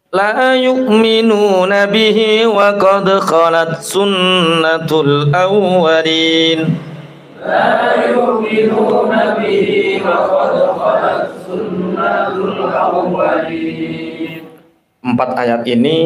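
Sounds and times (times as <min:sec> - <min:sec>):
man chanting: 0:00.0 - 0:06.9, 0:15.0 - 0:16.0
several voices chanting: 0:07.4 - 0:14.6.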